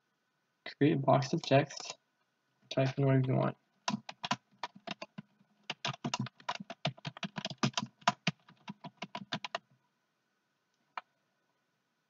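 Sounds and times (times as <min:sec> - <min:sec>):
typing on computer keyboard: 0:03.8 - 0:09.6.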